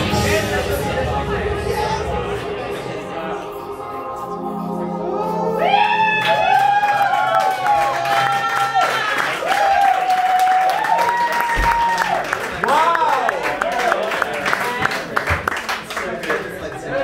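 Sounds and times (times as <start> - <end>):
recorded song chord: 0.0 - 6.2
audience whooping and cheering: 5.1 - 14.3
audience clapping: 6.0 - 17.0.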